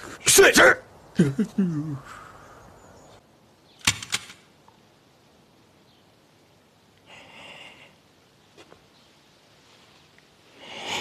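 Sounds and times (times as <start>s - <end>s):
man's short laugh: 1.2s - 2.1s.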